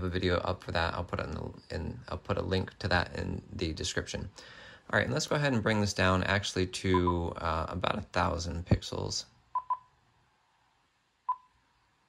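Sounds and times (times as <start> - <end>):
short keypress beep: 9.6 - 9.8.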